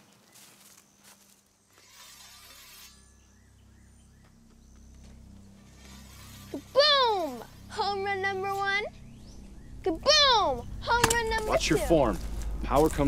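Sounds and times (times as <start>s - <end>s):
low steady drone: 2.6s - 13.0s.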